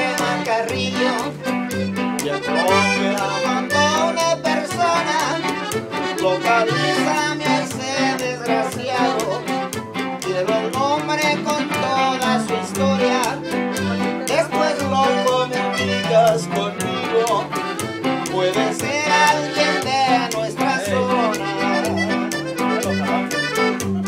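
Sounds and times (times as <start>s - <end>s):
accordion melody: 0.0s - 24.0s
strummed guitar: 0.0s - 24.0s
upright bass thumping: 0.0s - 24.0s.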